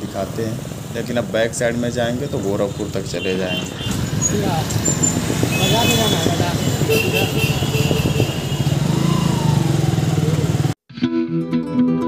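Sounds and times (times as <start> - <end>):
street traffic: 0.0 - 10.8
motorcycle engine running: 3.8 - 10.8
acoustic guitar music: 10.9 - 12.0.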